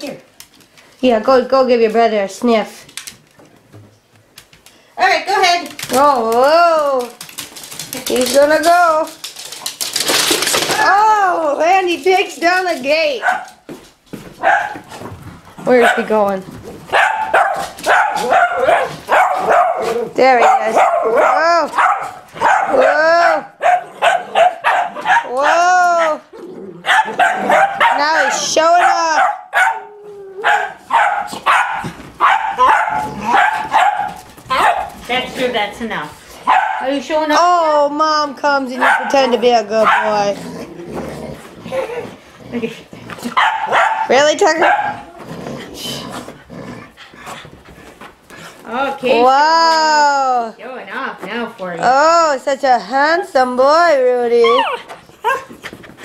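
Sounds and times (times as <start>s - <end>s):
dog scuffling on carpet: 12.7s - 22.6s, 46.0s - 49.0s
puppy barking: 13.2s - 13.6s, 14.4s - 14.8s, 16.9s - 25.6s, 26.8s - 35.0s, 36.4s - 37.0s, 38.8s - 40.2s, 43.3s - 45.1s
dog panting: 44.5s - 48.8s, 54.4s - 56.0s.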